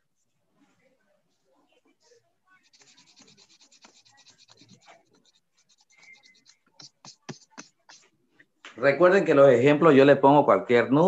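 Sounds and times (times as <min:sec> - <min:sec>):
faint rapid scratching: 0:00.2 - 0:08.6.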